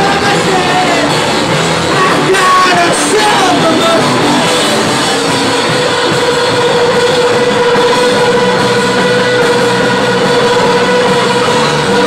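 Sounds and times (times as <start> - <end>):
rock band playing loud: 0.0 - 12.0
sustained distorted guitar tone: 0.0 - 12.0.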